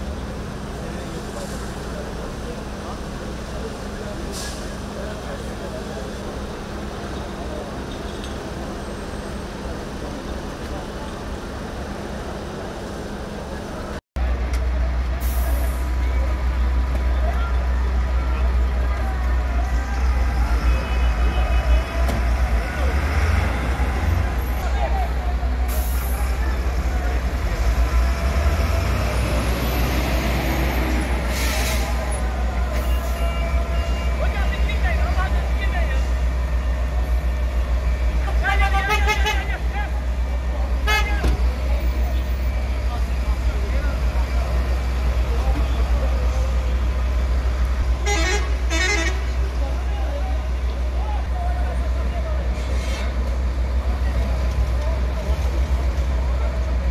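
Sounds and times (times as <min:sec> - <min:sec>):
emergency vehicles rumbling: 0:00.0 - 0:56.9.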